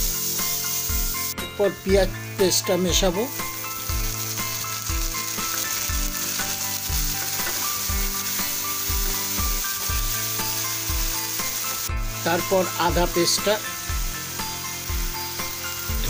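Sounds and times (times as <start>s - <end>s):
vegetables sizzling in hot oil: 0.0s - 16.0s.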